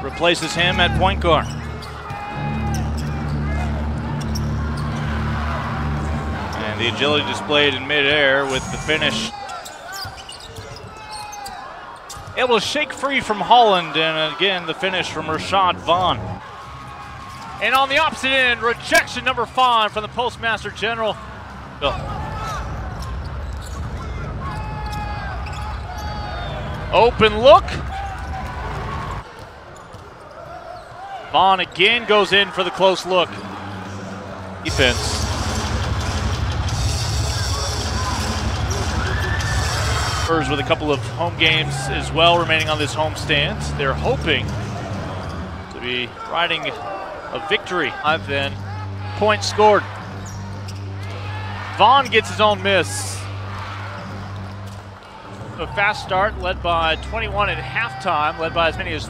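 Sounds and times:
arena background music: 0:00.0 - 0:09.4, 0:13.1 - 0:29.3, 0:31.4 - 0:59.0
crowd noise: 0:00.0 - 0:59.0
sneaker squeaks on court: 0:01.4 - 0:03.4, 0:09.4 - 0:12.4, 0:23.0 - 0:24.0, 0:24.8 - 0:26.1, 0:50.2 - 0:51.1.

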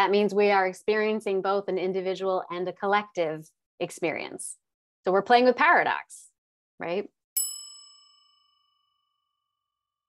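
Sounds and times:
bell-like ding: 0:07.4 - 0:09.7.

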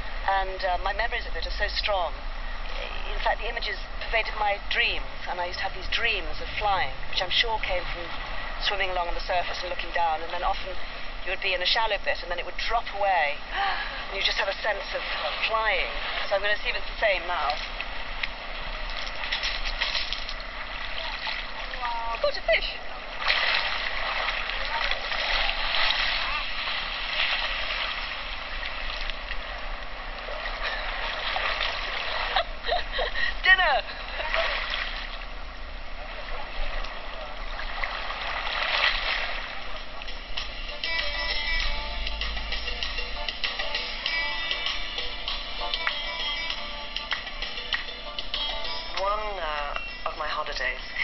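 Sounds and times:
sea water splashing and sloshing: 0:00.0 - 0:41.3
music: 0:40.0 - 0:51.0.

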